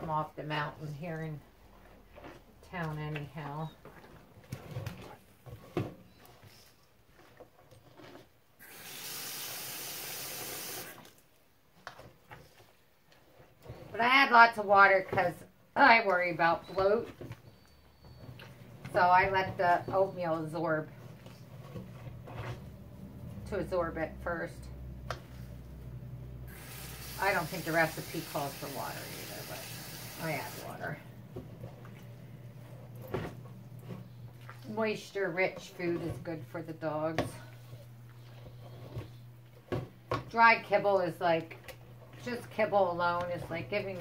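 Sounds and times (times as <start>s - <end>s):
faucet running into sink: 8.6s - 11.0s, 26.5s - 30.7s.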